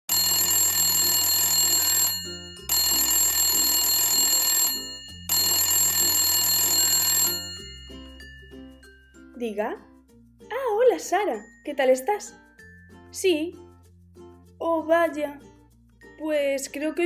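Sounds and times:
telephone ringing: 0:00.1 - 0:08.7.

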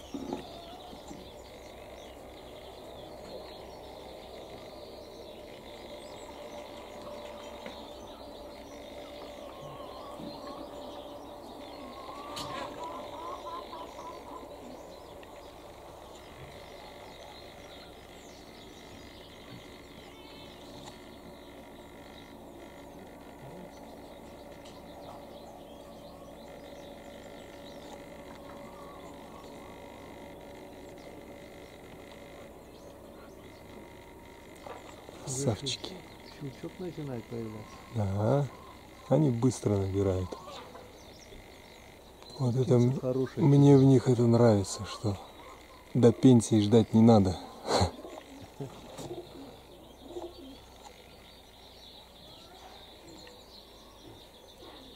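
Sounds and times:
faint bird chirping: 0:00.0 - 0:54.9
steady low hum: 0:00.0 - 0:54.9.

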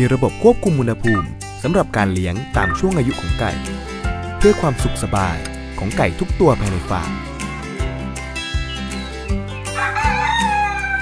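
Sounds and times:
background music: 0:00.0 - 0:11.0
rooster crowing: 0:09.7 - 0:11.0.

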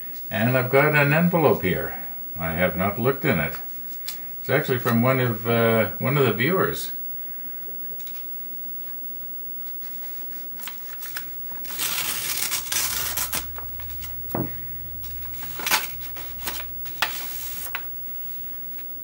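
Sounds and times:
paper rustling and crinkling: 0:09.6 - 0:14.2, 0:15.0 - 0:18.9.

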